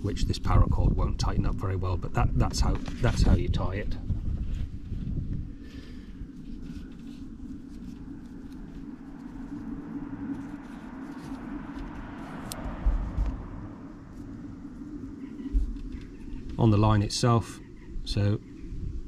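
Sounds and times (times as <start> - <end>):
outdoor background hum: 0.0 - 19.0
vehicle passing: 8.8 - 15.6.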